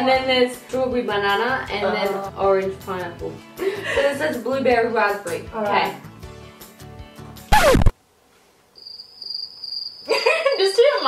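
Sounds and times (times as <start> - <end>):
cricket chirping: 8.8 - 11.0.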